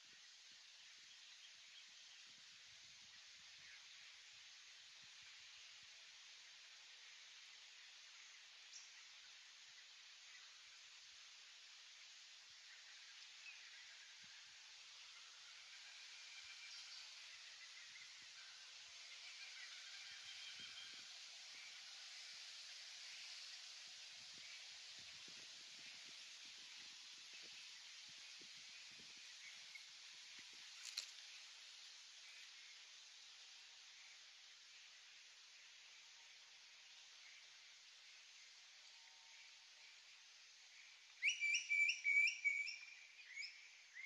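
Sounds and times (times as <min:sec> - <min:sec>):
soft steady hiss: 0:00.0 - 0:44.0.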